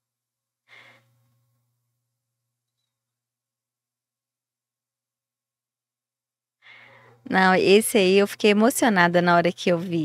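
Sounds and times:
person breathing in: 0:00.7 - 0:01.1, 0:06.6 - 0:07.2
person speaking: 0:07.2 - 0:10.0.

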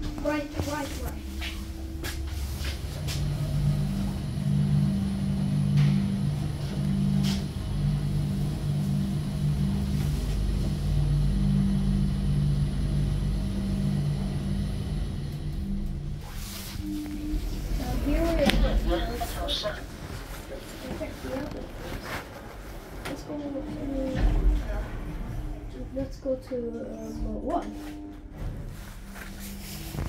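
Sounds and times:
pitched tones: 0:00.0 - 0:20.3
elevator drive humming: 0:00.0 - 0:30.0
low rumble: 0:00.0 - 0:30.0.

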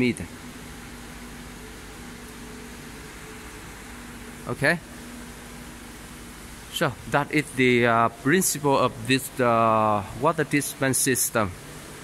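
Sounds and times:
machinery hum and hiss: 0:00.0 - 0:12.0.

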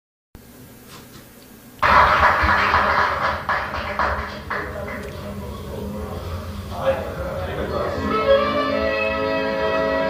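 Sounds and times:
cassette tape hiss: 0:00.4 - 0:10.0
live audience noise: 0:01.8 - 0:10.0.

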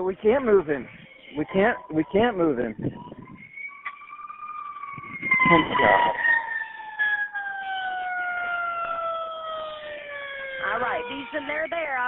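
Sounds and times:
emergency vehicle siren: 0:00.0 - 0:12.0.

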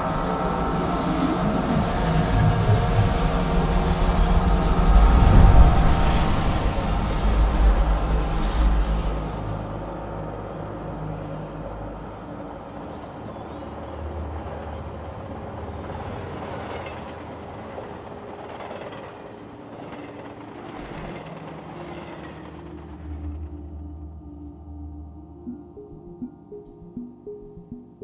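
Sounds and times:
passenger train running on track: 0:00.0 - 0:25.9.

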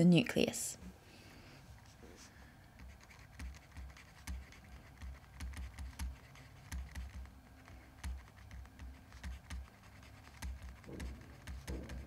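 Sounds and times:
stylus tapping on tablet screen: 0:02.8 - 0:12.0.

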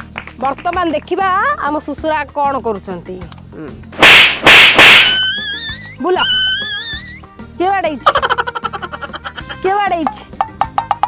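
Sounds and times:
whip-crack sound effects: 0:04.0 - 0:05.4.

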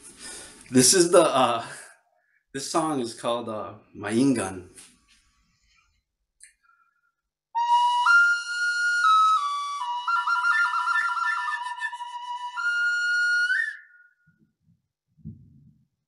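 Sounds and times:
flute melody: 0:07.6 - 0:14.3.

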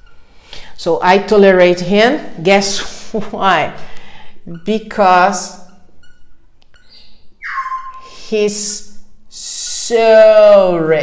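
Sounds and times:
marker squeak: 0:00.0 - 0:00.3, 0:04.1 - 0:09.1
marker writing on whiteboard: 0:04.5 - 0:08.9.

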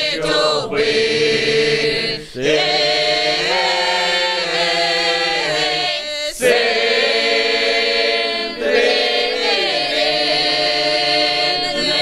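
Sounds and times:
mixed folk choir singing a cappella: 0:00.0 - 0:12.0.

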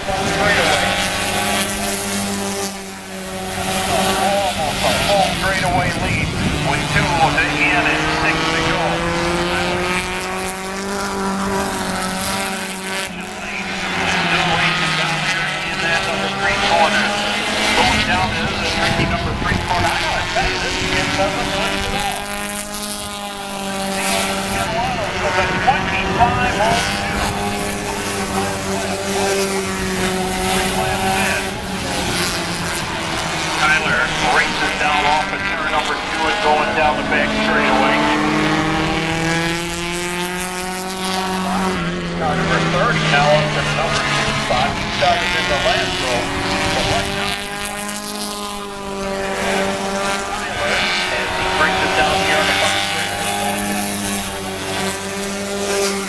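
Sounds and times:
spectators chattering: 0:00.0 - 0:47.9, 0:48.6 - 0:56.0
race car engines running: 0:00.0 - 0:56.0.

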